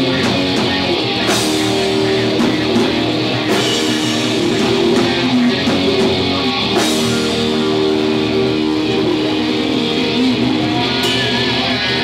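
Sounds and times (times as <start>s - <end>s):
electric guitar ringing chords: 0.0s - 12.0s.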